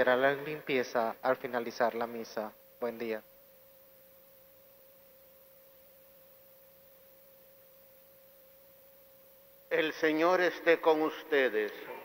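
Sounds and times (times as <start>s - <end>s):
faint steady tone: 0.0s - 12.0s.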